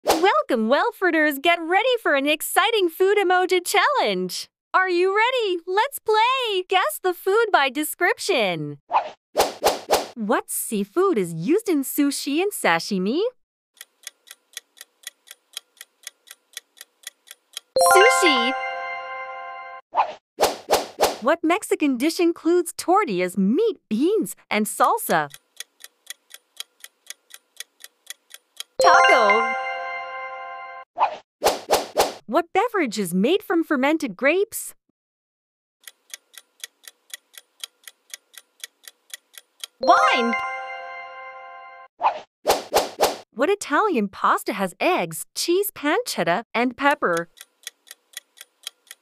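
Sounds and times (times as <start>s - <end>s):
clock ticking: 13.8s - 18.4s, 24.8s - 29.4s, 35.8s - 40.0s, 46.9s - 49.0s
person speaking: 17.8s - 18.9s, 28.8s - 29.8s, 39.8s - 40.8s, 46.6s - 47.3s
bright ringing chime: 17.8s - 19.8s, 28.8s - 30.8s, 39.8s - 41.9s.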